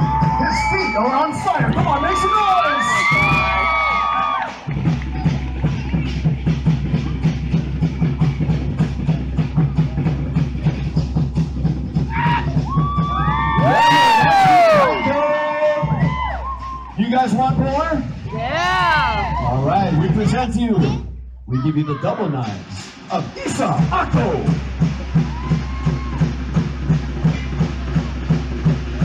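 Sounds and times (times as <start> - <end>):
crowd whooping and cheering: 0.0 - 8.6, 12.1 - 17.3, 18.2 - 20.4, 25.0 - 26.6
fast drumbeat: 0.0 - 29.0.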